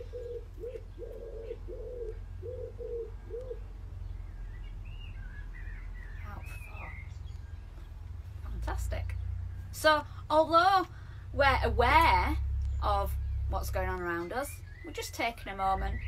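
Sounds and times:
pigeon cooing: 0.0s - 3.8s
songbird chirping: 0.0s - 16.0s
low rumble: 3.1s - 16.0s.

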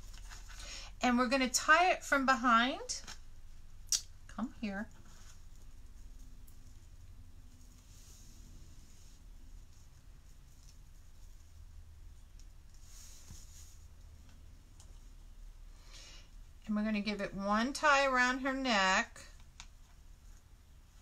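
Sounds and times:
ribbon rustling and crinkling: 0.0s - 1.0s, 3.0s - 15.5s.

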